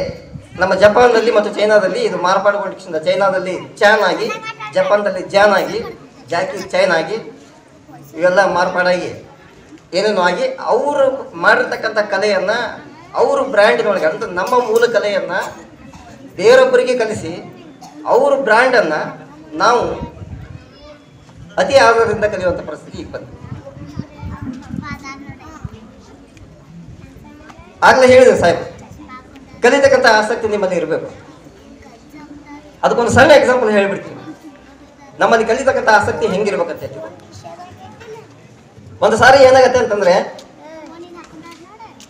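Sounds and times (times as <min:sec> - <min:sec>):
man speaking into a microphone: 0:00.0 - 0:07.4, 0:08.0 - 0:09.3, 0:09.9 - 0:20.3, 0:21.4 - 0:23.4, 0:27.8 - 0:28.8, 0:29.6 - 0:31.2, 0:32.8 - 0:34.3, 0:35.2 - 0:37.1, 0:38.9 - 0:40.4
faint children's voices: 0:00.0 - 0:42.0.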